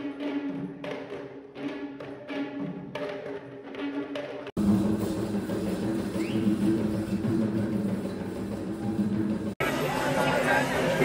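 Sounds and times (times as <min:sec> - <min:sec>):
background music: 0:00.0 - 0:11.0
busy street procession noise: 0:07.9 - 0:11.0.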